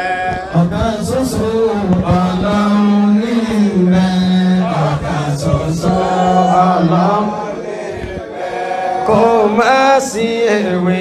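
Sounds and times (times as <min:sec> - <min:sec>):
man singing devotional chant: 0:00.0 - 0:08.1, 0:09.0 - 0:11.0.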